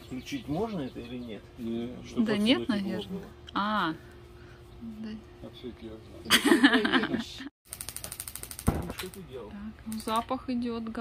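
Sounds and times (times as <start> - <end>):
spark igniter clicking rapidly: 7.7 - 10.3.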